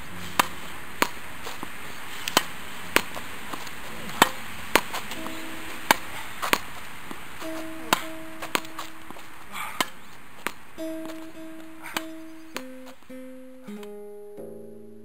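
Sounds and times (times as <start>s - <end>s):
tennis ball hit with racquet: 0.0s - 14.0s
plucked-string music: 0.0s - 15.0s
ball rebounding off wall: 0.1s - 13.0s.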